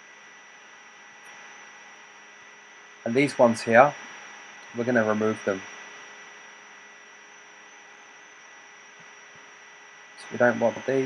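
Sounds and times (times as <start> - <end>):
faint steady hiss: 0.0 - 11.0
thin electrical hum: 0.0 - 11.0.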